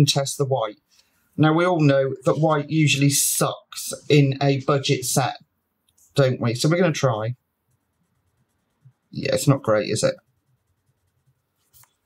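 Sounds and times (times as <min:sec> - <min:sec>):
pencil and paper handling: 0:07.7 - 0:12.0
pencil scratch: 0:07.7 - 0:12.0.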